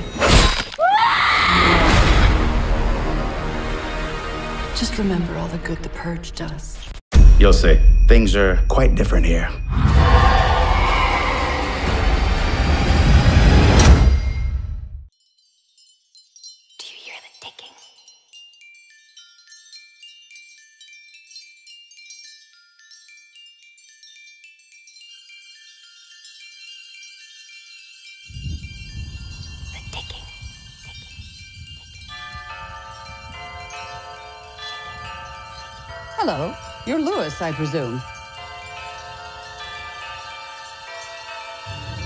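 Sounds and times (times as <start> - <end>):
rumbling trailer score with heavy bass: 7.1 - 15.0
high tinkling chime tones: 7.4 - 11.0, 14.2 - 42.0.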